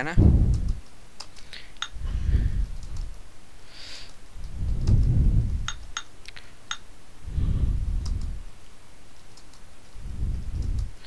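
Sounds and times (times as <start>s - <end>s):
low rumbling noise: 0.0s - 0.8s, 4.4s - 6.0s.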